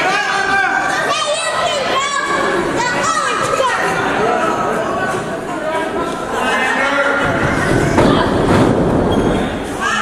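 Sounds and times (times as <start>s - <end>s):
wrestler hitting the mat: 7.2s - 9.6s
wrestling ring rumbling and thudding: 7.2s - 9.8s.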